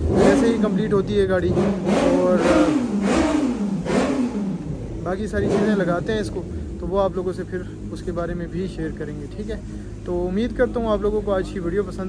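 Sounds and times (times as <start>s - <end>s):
car engine revving: 0.0s - 12.0s.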